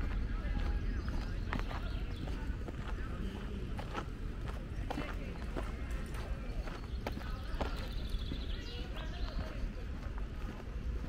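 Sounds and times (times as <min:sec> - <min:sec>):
footsteps on gravel: 0:00.0 - 0:11.0
steady low rumble: 0:00.0 - 0:11.0.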